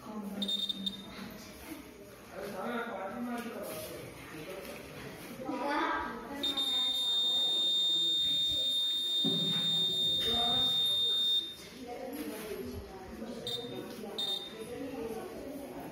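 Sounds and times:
quiet voices talking: 0.0s - 15.9s
high-pitched buzzer tone: 0.4s - 1.1s, 6.4s - 11.6s, 13.5s - 14.6s.

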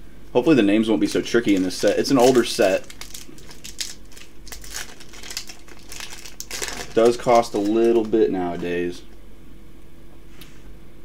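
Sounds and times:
foil wrapper tearing and crinkling: 1.2s - 8.8s.

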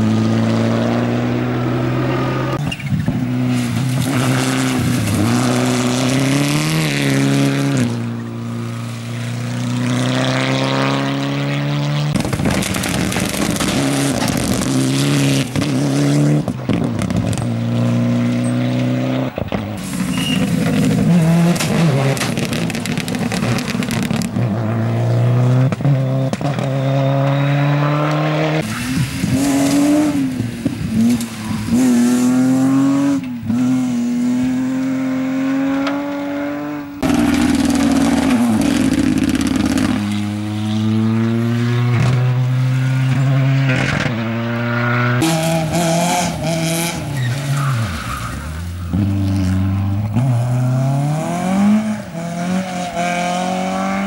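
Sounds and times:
rally car engines revving: 0.0s - 54.0s.

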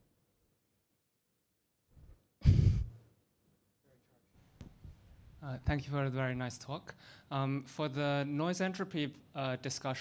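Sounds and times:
short exhale close to microphone: 2.4s - 3.0s.

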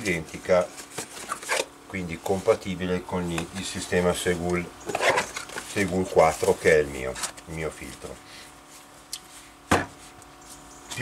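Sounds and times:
box knocking on wooden bench: 9.7s - 9.9s.

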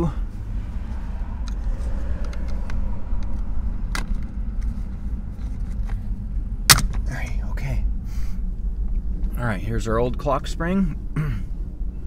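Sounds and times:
low rumble: 0.0s - 10.0s.

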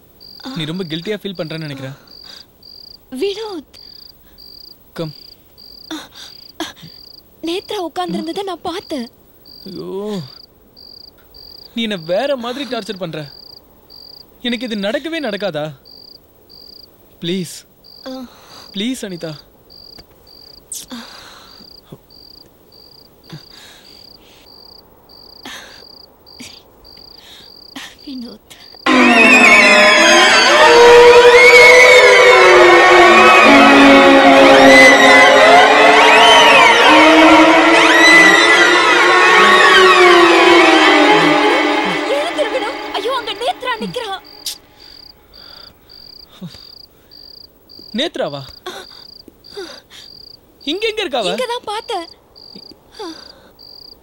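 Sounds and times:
cricket chirping: 0.0s - 35.4s, 37.3s - 54.0s
dissonant horror music sting: 28.9s - 44.5s
wavering voice: 32.8s - 44.7s.

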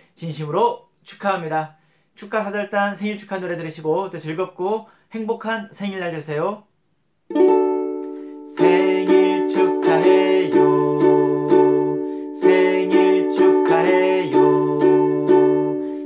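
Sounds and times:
ukulele strumming: 7.3s - 16.0s
man singing: 8.5s - 15.8s.

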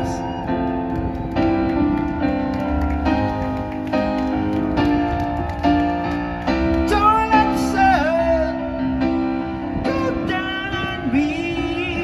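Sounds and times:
stage piano chords: 0.0s - 12.0s
man singing pop ballad: 6.8s - 9.0s, 9.8s - 12.0s.

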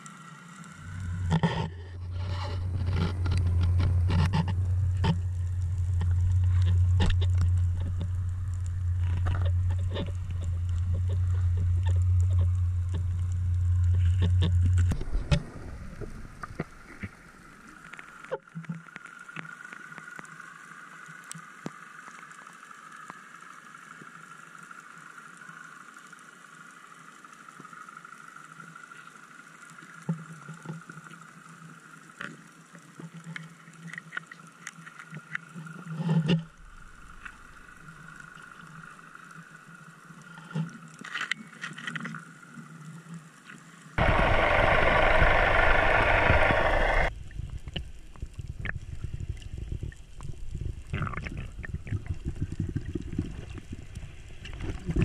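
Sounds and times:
steady high underwater hum: 0.0s - 55.0s
loud rushing noise: 44.0s - 47.1s.

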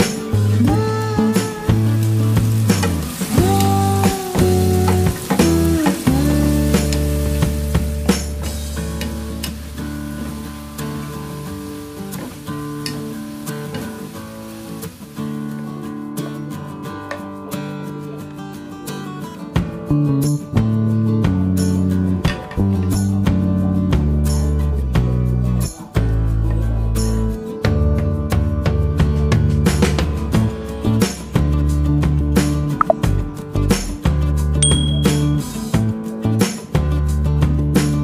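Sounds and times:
food sizzling in a frying pan: 0.0s - 16.0s
background music: 0.0s - 38.0s.

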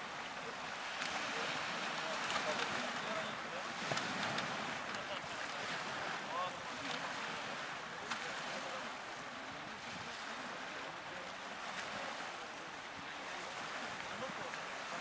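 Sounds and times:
faint voices: 0.0s - 15.0s
water washing against shore: 0.0s - 15.0s.

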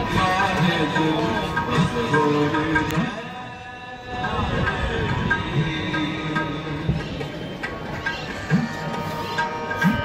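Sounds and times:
harmonium accompaniment: 0.0s - 10.0s.

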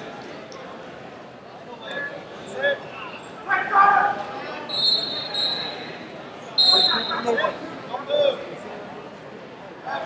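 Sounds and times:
murmur of large hall: 0.0s - 10.0s.

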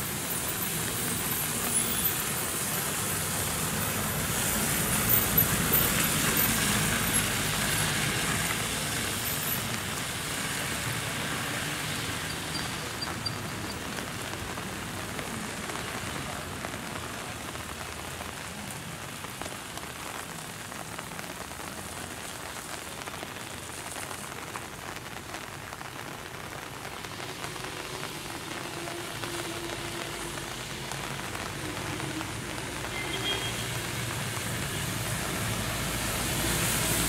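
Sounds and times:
rain falling on wet road: 0.0s - 37.0s.

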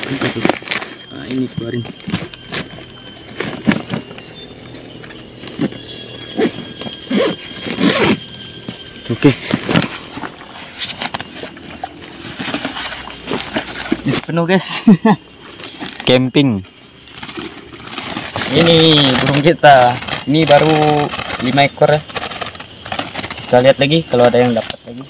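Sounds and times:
forest insects droning: 0.0s - 25.0s
backpack rustling: 0.1s - 14.1s
zipper pulled closed: 5.5s - 8.2s.

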